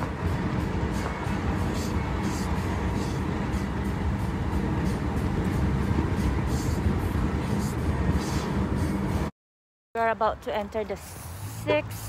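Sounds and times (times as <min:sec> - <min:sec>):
car road and engine rumble: 0:00.0 - 0:09.3, 0:10.0 - 0:12.0.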